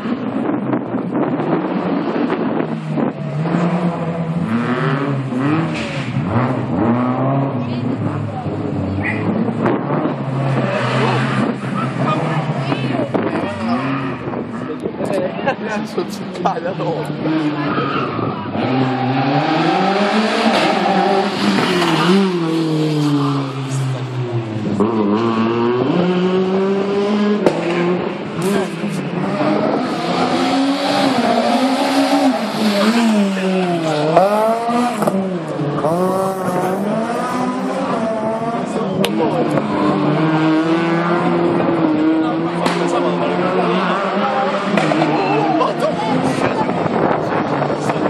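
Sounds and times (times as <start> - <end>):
race car engine revving: 0.0 - 48.0.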